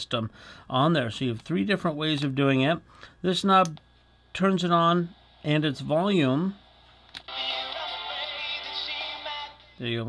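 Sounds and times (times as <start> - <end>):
song with singing from small speaker: 7.2 - 9.9.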